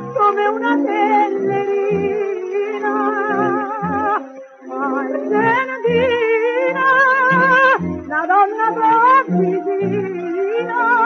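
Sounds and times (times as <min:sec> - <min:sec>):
old song recording with vibrato melody: 0:00.0 - 0:11.0.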